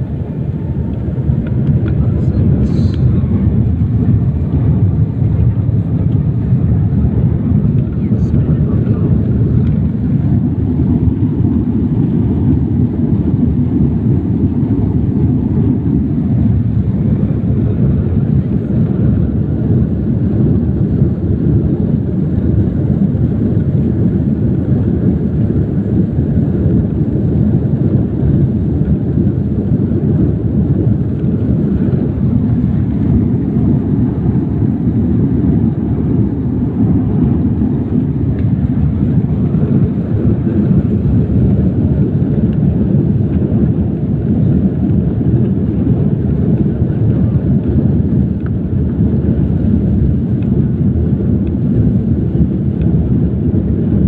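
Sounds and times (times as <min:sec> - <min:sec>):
jet engines and wheels rumbling: 0:00.0 - 0:54.0.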